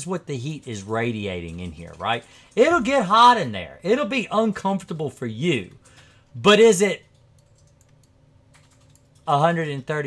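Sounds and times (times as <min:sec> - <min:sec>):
faint low room hum: 0:00.0 - 0:10.0
computer mouse clicks: 0:07.0 - 0:09.3.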